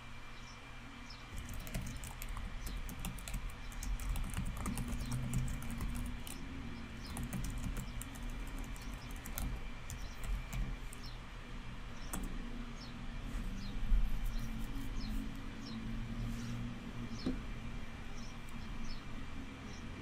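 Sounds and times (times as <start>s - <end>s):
low steady hum: 0.0s - 20.0s
computer keyboard typing: 1.3s - 11.1s.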